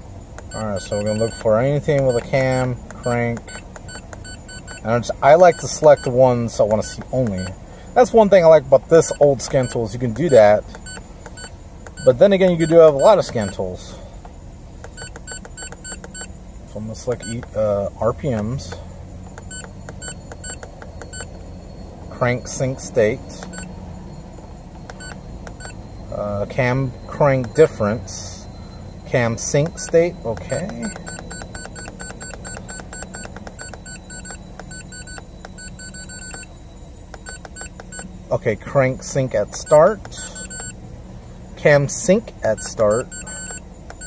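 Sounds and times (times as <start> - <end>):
engine idling hum: 0.0 - 44.0
short electronic key beeps: 0.4 - 7.6, 9.0 - 13.7, 14.8 - 16.4, 17.1 - 38.3, 39.0 - 40.8, 41.8 - 44.0.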